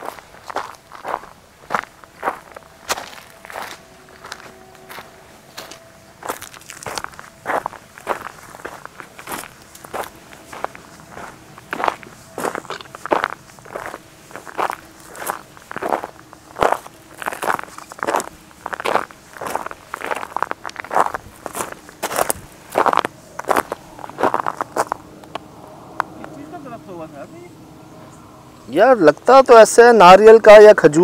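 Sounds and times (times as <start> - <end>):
footsteps crunching on dirt path: 0.0 - 26.4.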